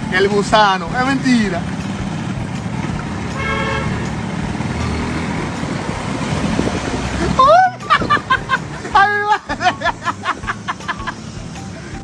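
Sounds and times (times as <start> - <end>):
street traffic rumble: 0.0 - 12.0
horn toot: 3.3 - 4.2.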